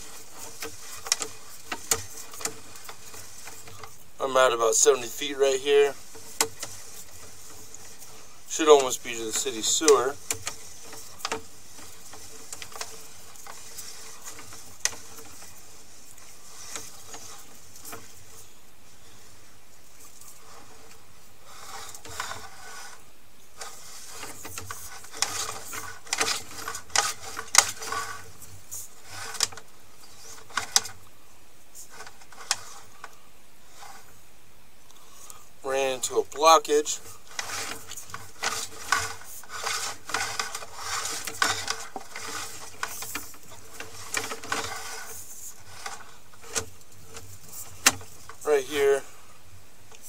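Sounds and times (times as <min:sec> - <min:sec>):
cable clicking and rattling in pipe: 0:00.0 - 0:18.5, 0:20.0 - 0:31.1, 0:31.8 - 0:34.2, 0:36.3 - 0:49.1
faint steady hum: 0:00.0 - 0:50.0.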